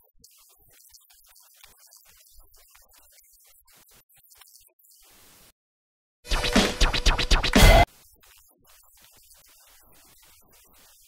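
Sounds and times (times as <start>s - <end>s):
scratch-like music stinger: 6.3s - 11.0s.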